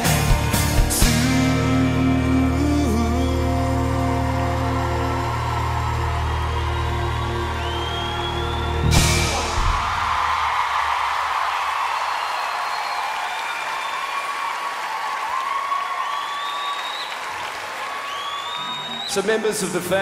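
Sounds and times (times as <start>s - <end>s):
audience cheering and whooping: 2.8s - 19.3s
audience applauding: 2.8s - 20.0s
band final chord with crash: 8.6s - 10.4s.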